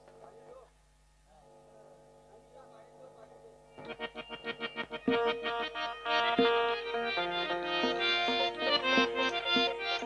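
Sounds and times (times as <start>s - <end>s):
harmonium playing: 3.8s - 10.0s.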